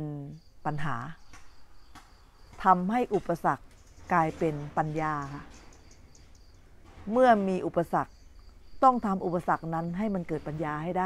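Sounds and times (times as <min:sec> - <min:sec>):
crickets chirping: 0:00.0 - 0:11.0
person speaking: 0:02.6 - 0:05.5.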